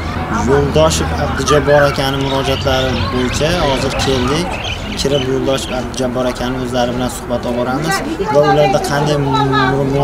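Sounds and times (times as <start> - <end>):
man speaking: 0.3 - 10.0.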